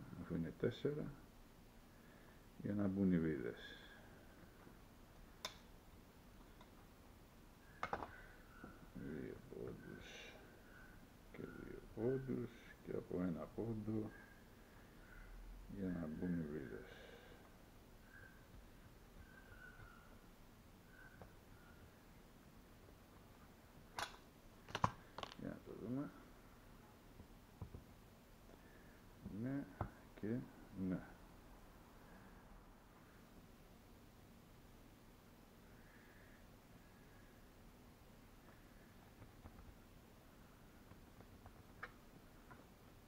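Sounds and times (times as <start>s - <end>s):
wooden blocks clicking and knocking: 24.0s - 25.4s.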